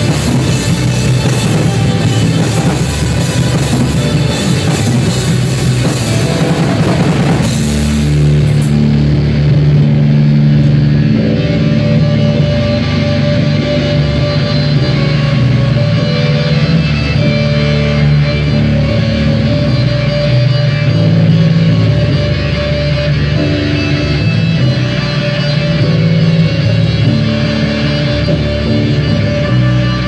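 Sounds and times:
electric guitars holding chords: 0.0s - 30.0s.

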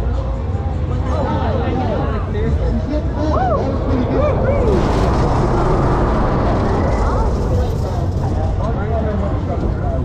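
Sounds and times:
steady low rumble: 2.2s - 10.0s
wind rushing over microphone: 3.5s - 10.0s.

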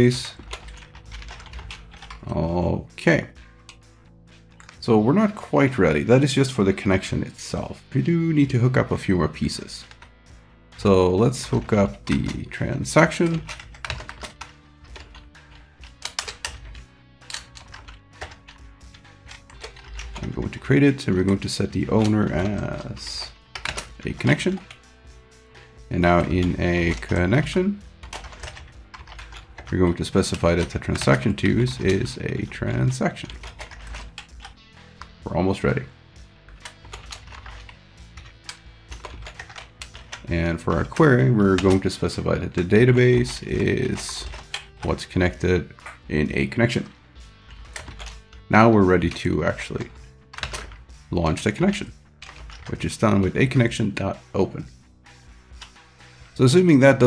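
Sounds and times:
typing on computer keyboard: 0.0s - 2.4s, 11.2s - 24.9s, 26.0s - 35.2s, 36.5s - 46.1s, 46.7s - 51.0s, 51.7s - 53.2s
soft background music: 0.0s - 57.0s.

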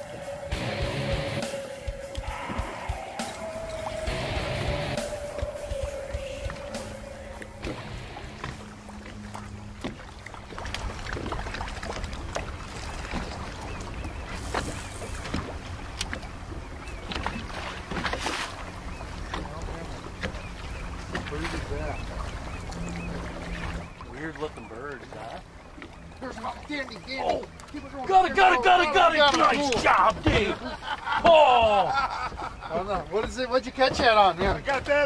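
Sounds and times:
held music tone: 0.0s - 8.7s
short splashes: 1.5s - 30.8s.

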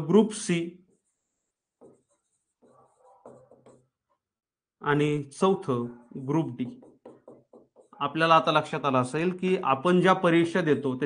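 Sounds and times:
pen writing on a board: 0.9s - 4.2s, 6.2s - 8.3s.

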